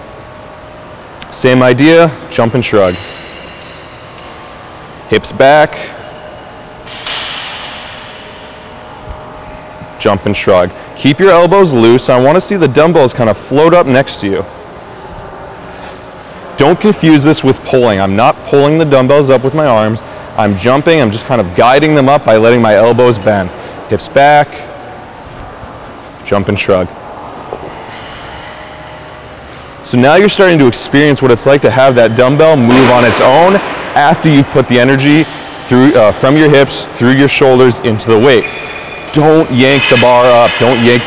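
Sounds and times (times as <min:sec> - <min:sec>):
room noise: 0:00.0 - 0:41.0.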